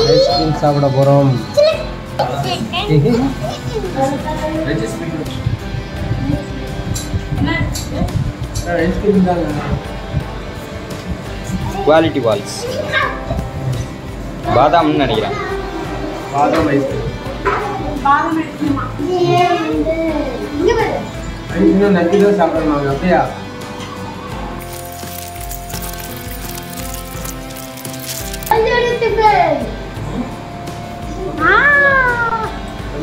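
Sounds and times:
background music: 0.0 - 33.0.

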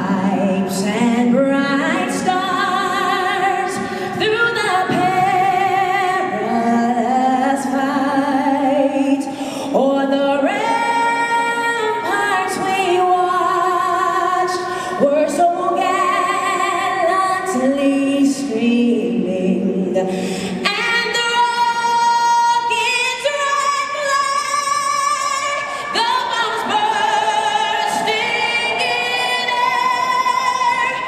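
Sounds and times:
woman singing into a microphone: 0.0 - 31.0.

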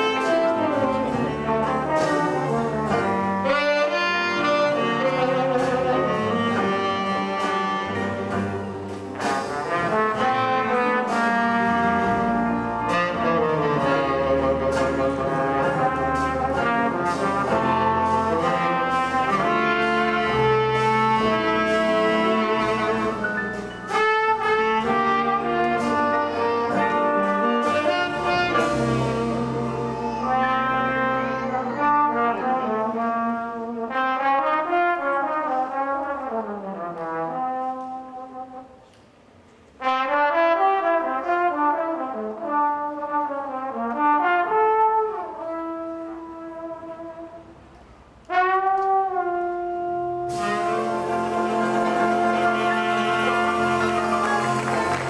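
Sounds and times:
tenor saxophone: 0.0 - 8.6, 9.2 - 33.8, 48.3 - 55.0
bass and drums: 0.0 - 37.7, 48.5 - 55.0
trombone: 0.0 - 38.9, 39.8 - 55.0.

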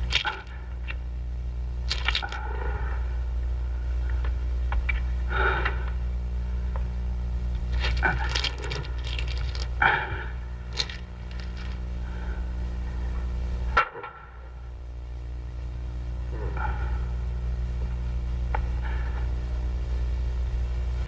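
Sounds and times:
film soundtrack hum: 0.0 - 21.0.

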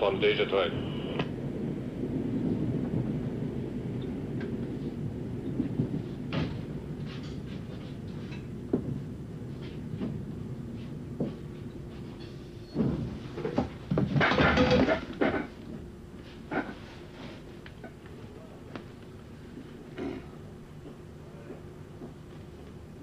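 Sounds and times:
train interior hum: 0.0 - 23.0.

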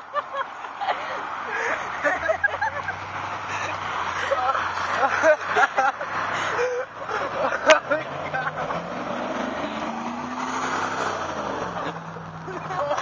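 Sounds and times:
car driving past: 1.9 - 13.0.

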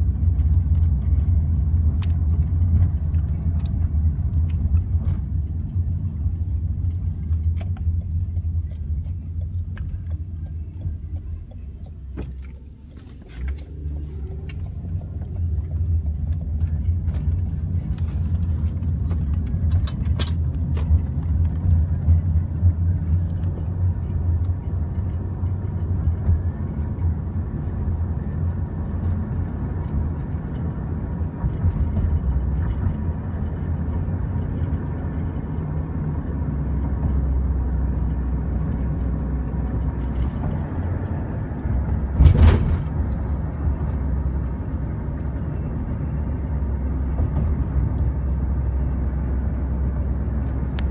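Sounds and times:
car cabin road rumble: 0.0 - 50.9.

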